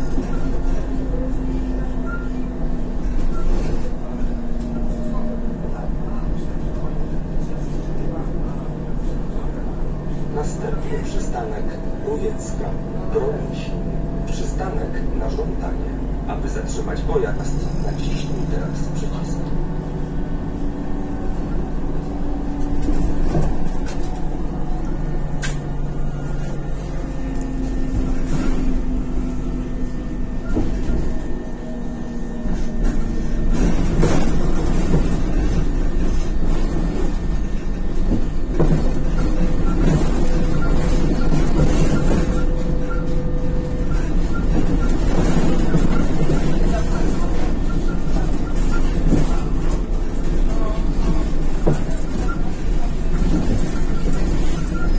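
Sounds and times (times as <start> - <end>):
bus engine hum: 0.0 - 54.9
low road rumble: 0.0 - 54.9.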